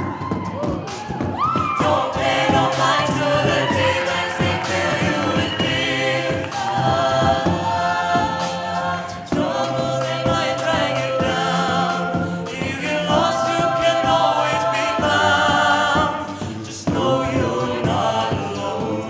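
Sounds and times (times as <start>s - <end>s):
a cappella group singing harmony: 0.0s - 19.0s.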